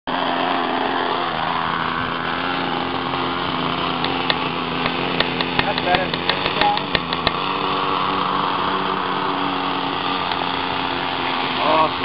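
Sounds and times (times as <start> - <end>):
small airboat engine running: 0.1 - 12.0.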